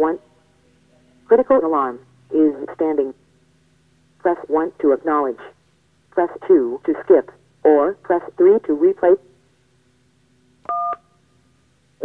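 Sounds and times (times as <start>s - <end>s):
two-tone keypad beep: 10.7s - 11.0s.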